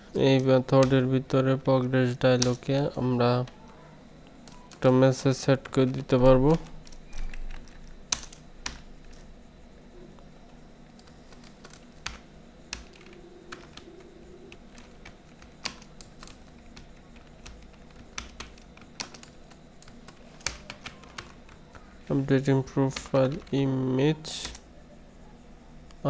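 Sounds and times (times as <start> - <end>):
computer keyboard typing: 2.3 - 9.2, 10.9 - 24.6.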